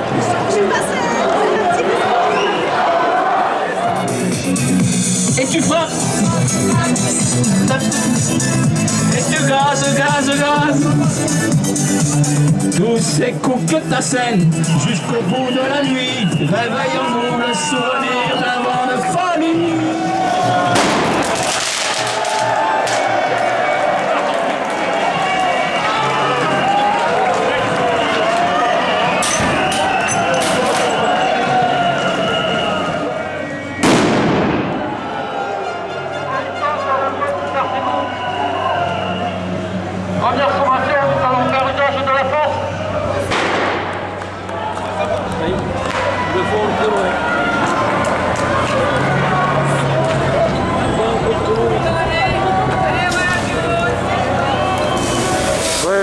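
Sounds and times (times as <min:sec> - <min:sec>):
crowd chanting: 0:00.0 - 0:04.6, 0:19.7 - 0:33.8, 0:34.5 - 0:37.2, 0:45.8 - 0:55.8
protesters calling out: 0:00.0 - 0:43.3, 0:44.4 - 0:56.0
grenade bang: 0:20.7 - 0:22.1, 0:33.8 - 0:35.0, 0:43.3 - 0:44.1
water cannon jet hissing: 0:54.8 - 0:56.0.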